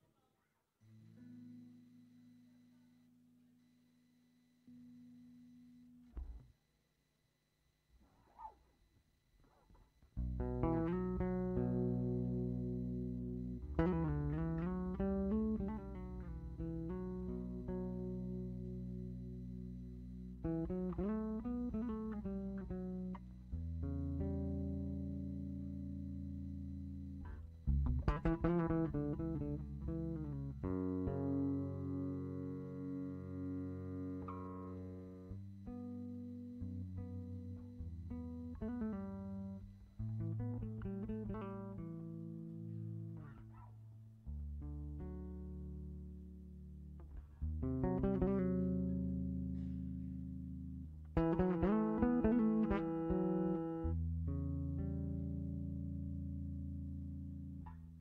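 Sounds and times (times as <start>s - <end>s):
solo electric bass guitar: 4.7s - 6.5s, 10.1s - 58.0s.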